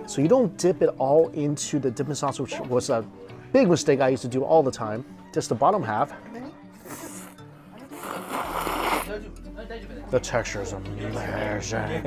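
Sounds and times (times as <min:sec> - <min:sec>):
background music: 0:00.0 - 0:12.0
man slurping noodles: 0:06.8 - 0:09.1.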